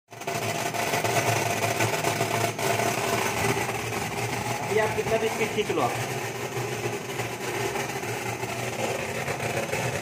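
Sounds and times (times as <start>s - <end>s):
sorting machine buzz and hum: 0.1s - 10.0s.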